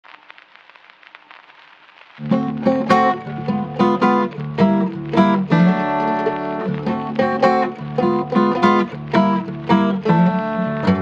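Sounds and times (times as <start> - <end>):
faint irregular crackling: 0.0 - 11.0
low hiss: 0.0 - 11.0.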